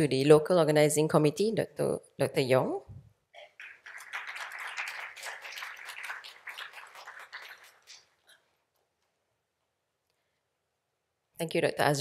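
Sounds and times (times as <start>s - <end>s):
audience applauding: 3.4s - 8.2s.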